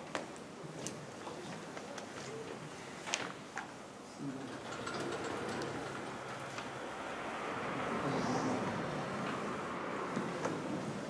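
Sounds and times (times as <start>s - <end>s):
sliding board rattling rumble: 4.2s - 8.1s.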